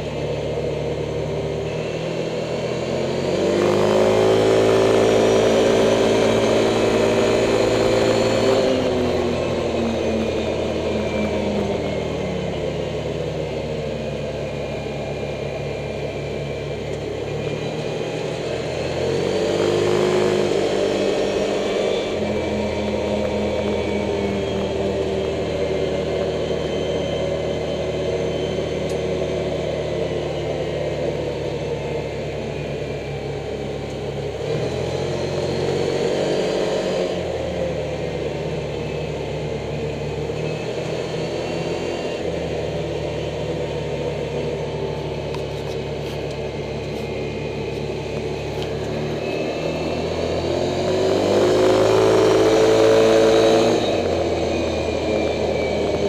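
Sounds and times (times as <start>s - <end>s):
vehicle engine running: 0.0s - 56.0s.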